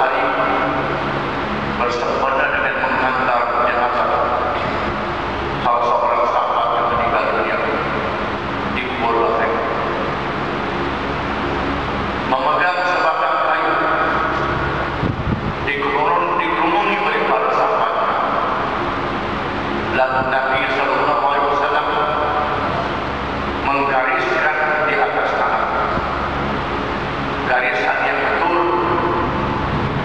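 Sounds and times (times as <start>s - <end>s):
man speaking into a microphone: 0.0s - 1.1s, 1.7s - 10.2s, 12.2s - 18.8s, 19.8s - 26.3s, 27.1s - 29.6s
room noise: 0.0s - 30.0s.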